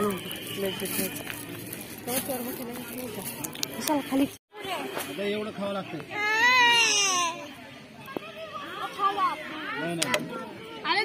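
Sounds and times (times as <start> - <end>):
child wailing: 6.2 - 7.4.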